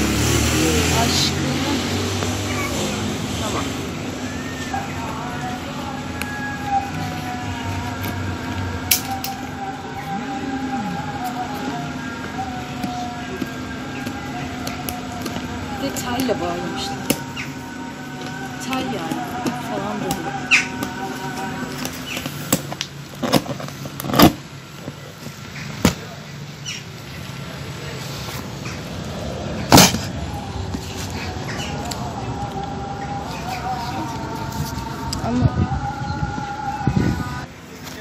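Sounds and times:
steady background hum: 0.7 - 38.0.

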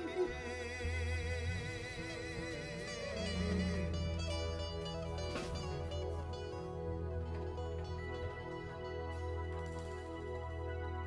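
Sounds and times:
low bass: 0.2 - 9.6
sustained string tones: 0.4 - 8.4
plucked note: 2.0 - 7.9.

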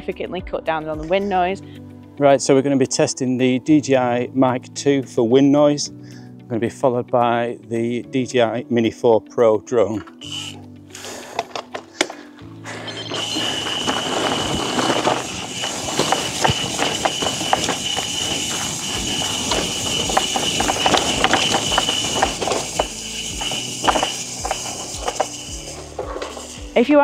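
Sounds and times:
background music: 0.0 - 27.0
bike tyre noise with rattles: 10.2 - 27.0
steady high whine: 12.6 - 27.0.

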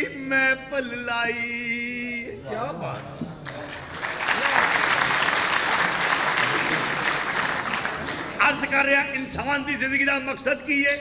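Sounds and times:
audience applauding: 3.4 - 8.7.

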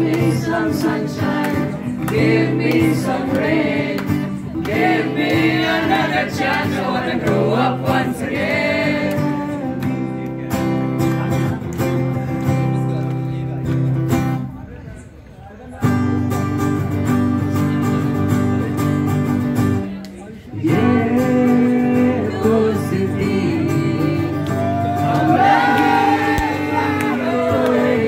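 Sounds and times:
voices singing: 0.0 - 10.1, 20.6 - 28.0
acoustic guitar strumming: 0.0 - 14.5, 15.8 - 19.9, 20.7 - 28.0.

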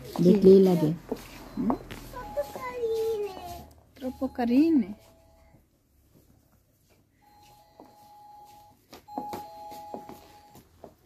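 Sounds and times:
electronic door chime: 7.2 - 10.6.

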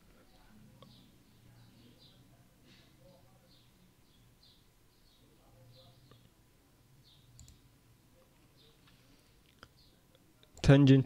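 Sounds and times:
computer mouse click: 7.3 - 7.6.

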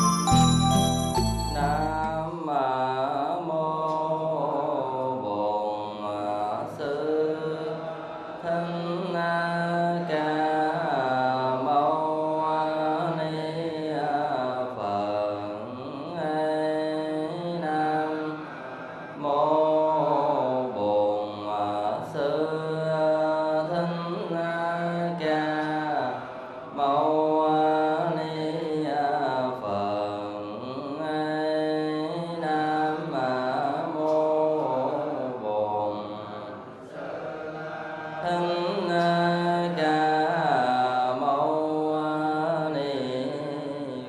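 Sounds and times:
chanting recitation: 1.1 - 44.0.

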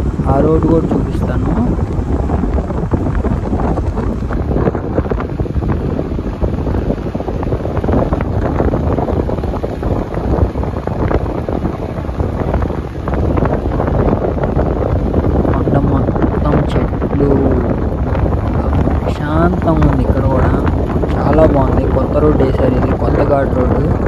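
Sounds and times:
wind rushing over microphone: 0.0 - 24.0.

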